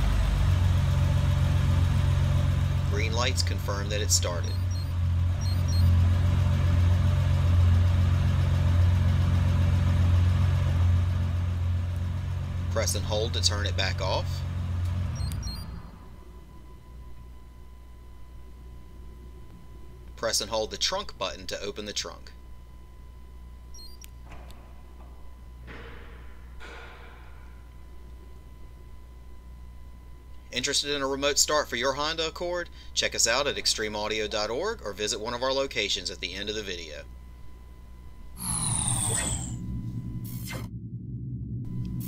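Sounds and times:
car engine idling: 0.0s - 20.2s.

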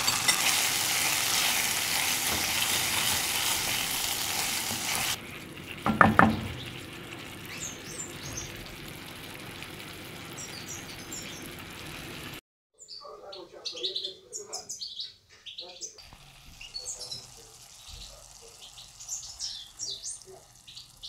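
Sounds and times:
simmering pan hiss: 0.0s - 12.4s, 16.0s - 21.0s
small birds chirping: 6.3s - 8.7s, 10.3s - 11.7s, 12.8s - 21.0s.

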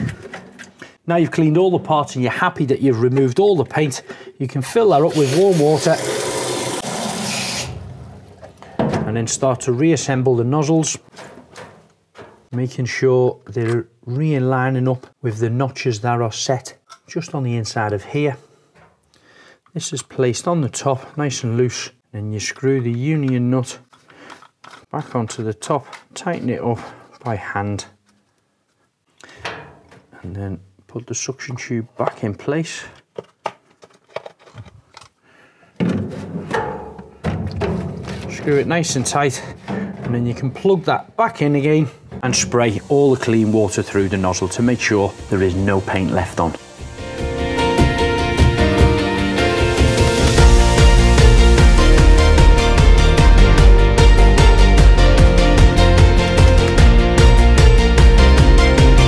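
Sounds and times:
plastic parts clicking: 23.3s - 25.0s, 33.0s - 35.2s.

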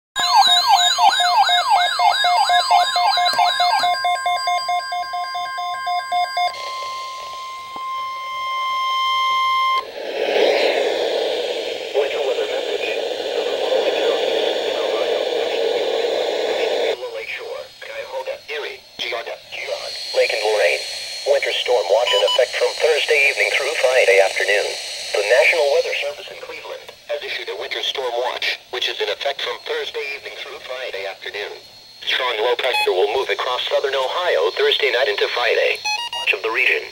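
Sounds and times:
warbling siren tone: 0.2s - 26.8s
steady alarm tones: 0.2s - 36.9s
hiss: 9.8s - 17.0s, 19.5s - 26.8s
automated broadcast voice: 10.1s - 36.9s.

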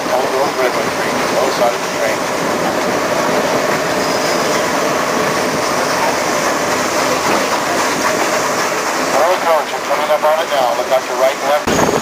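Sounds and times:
man talking: 0.0s - 2.3s, 9.1s - 11.7s
train wheels on rails: 0.0s - 12.0s.

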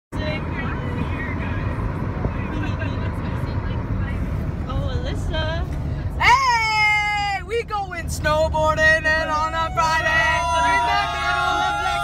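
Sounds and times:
car driving rumble from inside: 0.1s - 12.0s.

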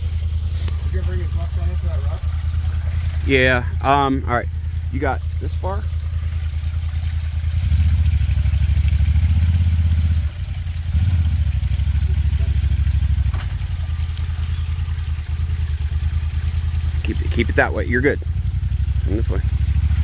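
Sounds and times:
utility vehicle engine at low revs: 0.0s - 20.0s.

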